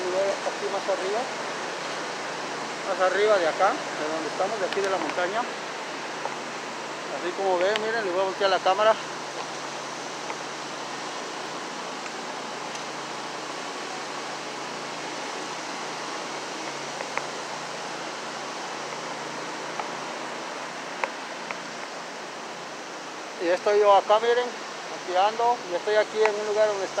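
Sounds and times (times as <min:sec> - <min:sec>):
waterfall rushing: 0:00.0 - 0:27.0.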